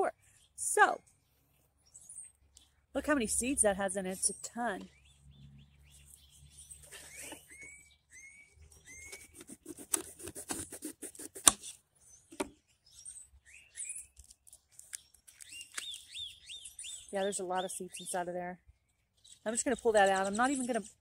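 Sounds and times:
small birds chirping: 0.0s - 10.3s, 11.1s - 21.0s
pepper cut on wooden board: 9.0s - 11.8s.

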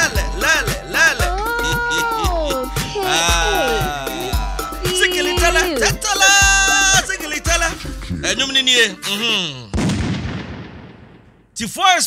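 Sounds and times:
gunshot blast: 9.7s - 11.6s.

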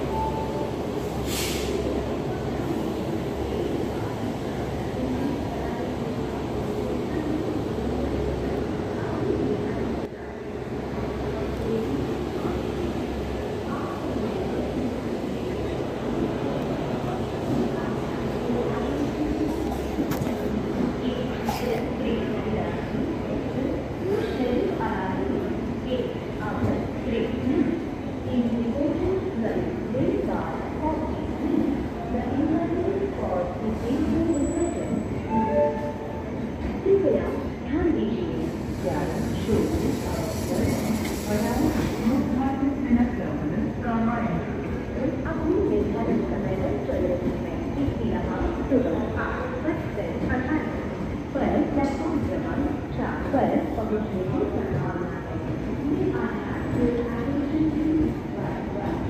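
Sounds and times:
people's voices: 0.0s - 59.0s.

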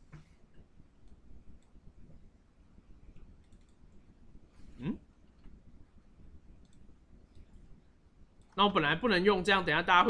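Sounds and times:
computer mouse clicks: 0.1s - 1.8s, 3.1s - 4.0s, 6.6s - 7.6s.

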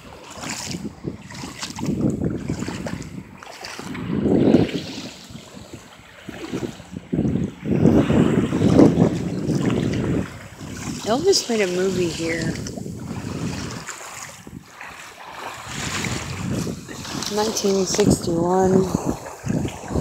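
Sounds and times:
small waves lapping: 0.0s - 20.0s
wind buffeting microphone: 0.0s - 20.0s.

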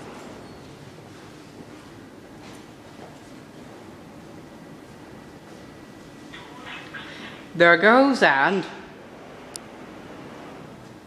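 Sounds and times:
indoor background hum: 0.0s - 11.0s.

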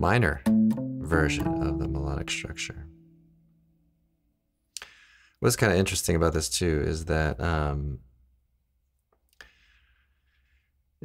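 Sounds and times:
electric guitar notes ringing: 0.5s - 3.6s.

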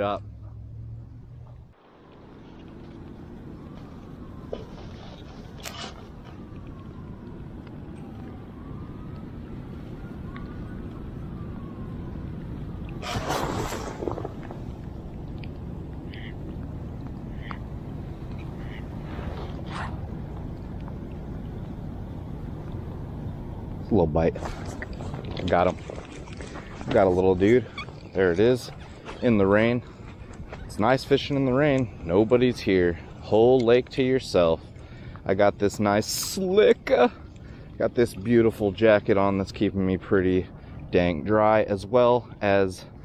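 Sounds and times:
wind and rain rumble: 0.0s - 43.0s.

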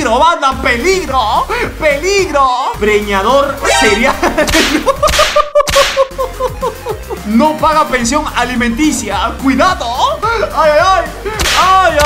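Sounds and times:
short high notes: 3.6s - 4.9s
swish sound effect: 3.6s - 4.9s.

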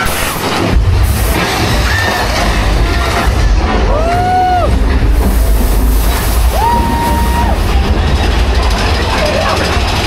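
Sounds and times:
ride train rumbling on track: 0.0s - 10.0s.

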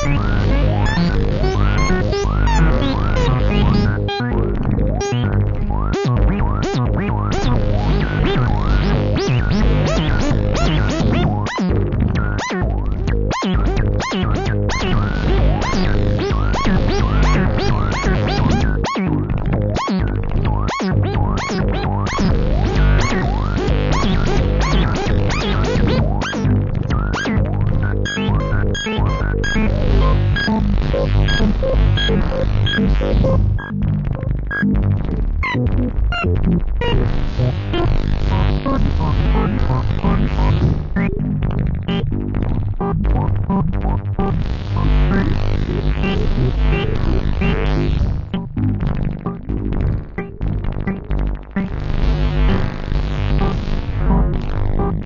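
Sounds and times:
steady low synth tones: 0.0s - 55.0s.

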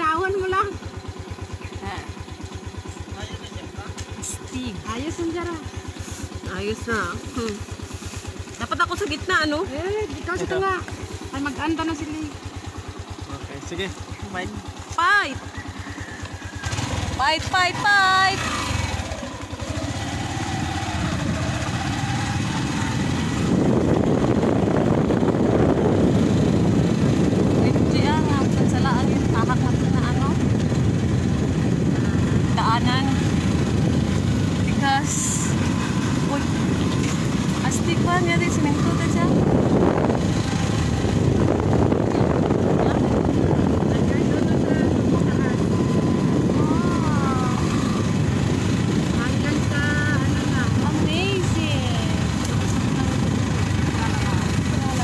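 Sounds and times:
motorcycle riding along road: 0.0s - 55.0s
wind rushing over microphone: 18.1s - 55.0s.

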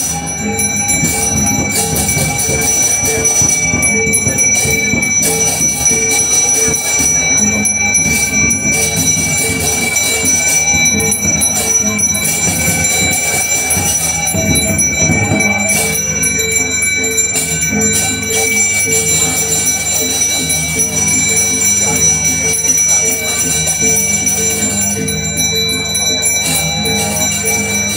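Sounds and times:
brass hand bell ringing: 0.0s - 27.9s.

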